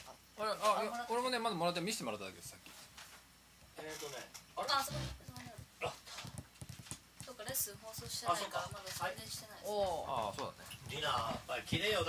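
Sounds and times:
people talking: 0:03.8 - 0:06.0, 0:07.2 - 0:12.0.

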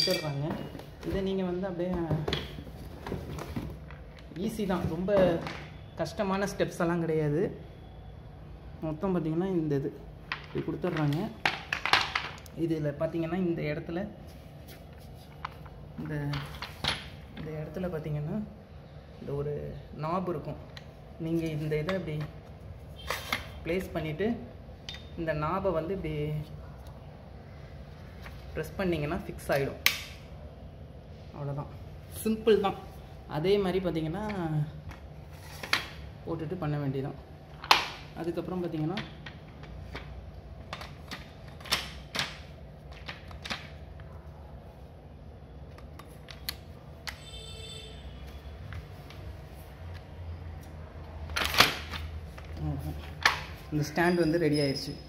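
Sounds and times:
plastic parts clicking and knocking: 0:10.2 - 0:12.6, 0:37.5 - 0:38.1, 0:38.7 - 0:44.1.

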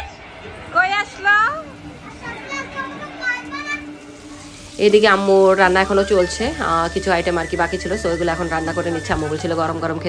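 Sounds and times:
child chatter: 0:01.2 - 0:04.8
children calling out: 0:01.6 - 0:08.1.

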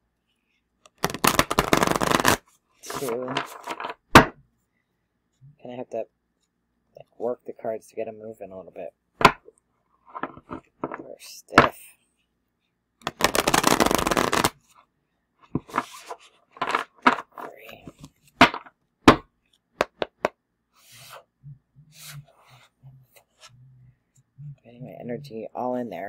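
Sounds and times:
cards being shuffled: 0:00.8 - 0:04.2, 0:13.0 - 0:14.7, 0:15.5 - 0:18.7
cards tapping and slapping: 0:00.9 - 0:04.3, 0:13.0 - 0:14.6, 0:15.6 - 0:20.4.

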